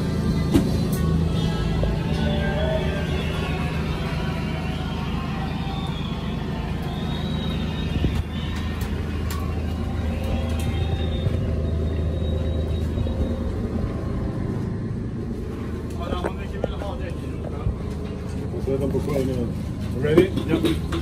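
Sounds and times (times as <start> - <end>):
large engine idling: 0.0 - 21.0.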